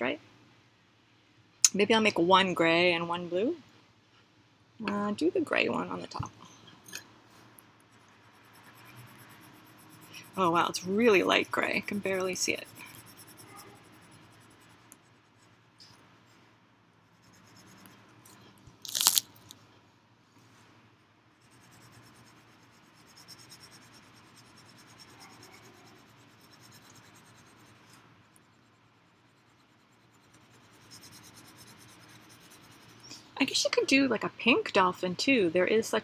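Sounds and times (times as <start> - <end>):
pencil scratching on paper: 7.9 - 15.8, 17.0 - 18.4, 21.4 - 33.1.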